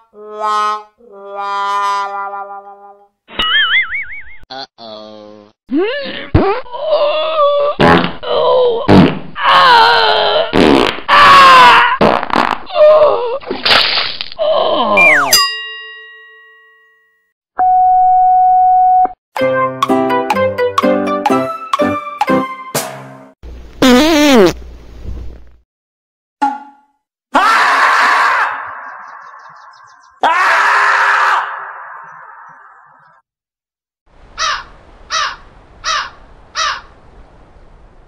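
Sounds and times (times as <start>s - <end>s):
comic squealing groaning effects: 4.5s - 12.0s, 14.4s - 15.3s, 27.3s - 28.8s, 30.2s - 33.0s
ringing chime: 15.0s - 17.2s
echoing scream: 27.3s - 33.0s.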